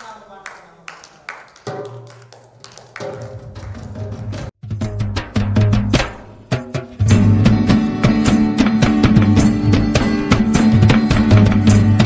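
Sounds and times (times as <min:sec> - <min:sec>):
hand clapping: 0:00.0 - 0:04.5.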